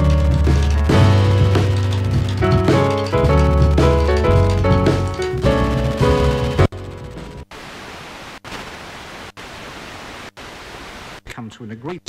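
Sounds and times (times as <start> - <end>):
fm static hiss: 1.1 - 12.0.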